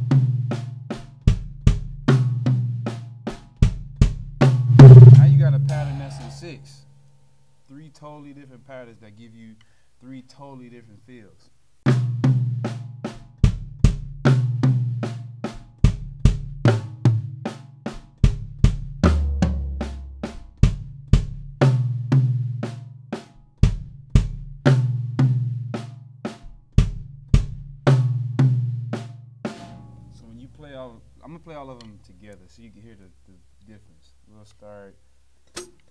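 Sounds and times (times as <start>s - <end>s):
kick drum strokes: 0.0s - 6.6s, 11.9s - 17.4s, 18.0s - 22.6s, 23.6s - 25.8s, 26.4s - 31.8s
drum kit playing: 0.0s - 6.7s, 11.8s - 33.4s
toms ringing: 4.8s - 6.6s.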